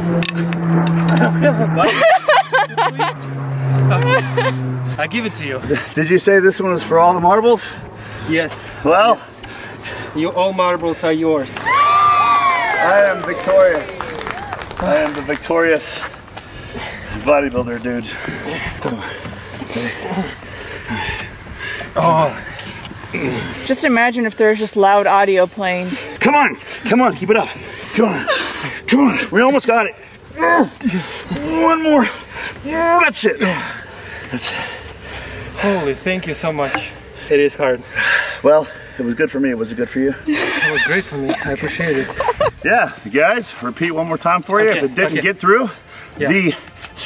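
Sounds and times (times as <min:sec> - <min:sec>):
men straining with effort: 0:00.0 - 0:10.6, 0:11.6 - 0:23.9, 0:25.7 - 0:43.7, 0:45.5 - 0:46.8
steady low hum: 0:00.0 - 0:11.5.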